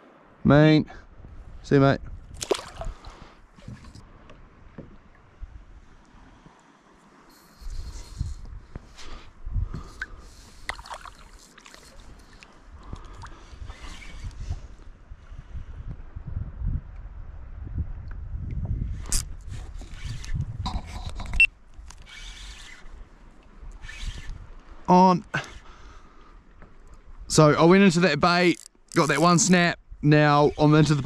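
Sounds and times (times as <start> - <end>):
wind rumble on microphone: 1.0 - 6.5, 7.3 - 10.8, 11.8 - 24.9
paddle splashing in water: 2.4 - 4.3, 9.8 - 14.3.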